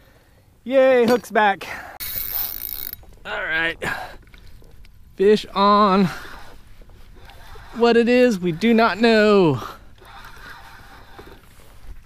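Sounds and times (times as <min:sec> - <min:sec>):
wind: 0:00.0 - 0:12.0
fishing reel winding: 0:02.0 - 0:03.2, 0:06.1 - 0:12.0
water noise: 0:02.0 - 0:12.0.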